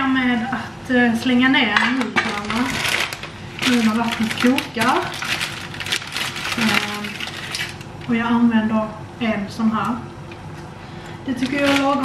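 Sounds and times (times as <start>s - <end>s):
plastic packet crinkling: 2.1s - 8.0s, 11.4s - 12.0s.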